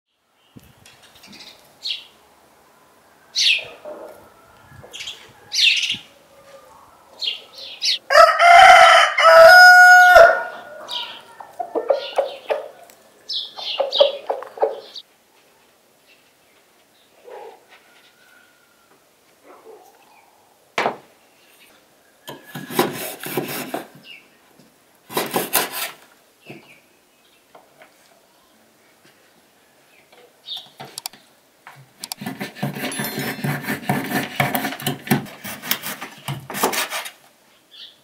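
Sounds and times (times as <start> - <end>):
rooster crowing: 2.6 - 12.8, 17.4 - 19.2
high bird chirps: 7.2 - 8.0, 13.3 - 15.0
hens clucking: 10.5 - 15.0.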